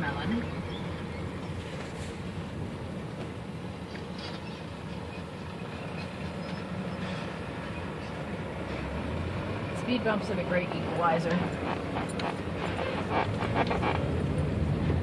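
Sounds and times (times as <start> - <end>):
heavy lorries passing: 0.0 - 15.0
road traffic rumble from car cabin: 0.0 - 15.0.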